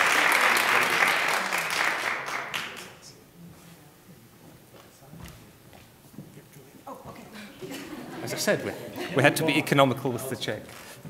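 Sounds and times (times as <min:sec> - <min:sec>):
footsteps on a stage: 0:03.4 - 0:06.4.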